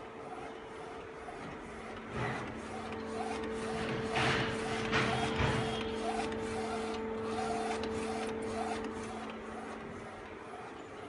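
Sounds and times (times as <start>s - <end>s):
printer hum: 0.0s - 11.0s
printer swishes: 0.2s - 11.0s.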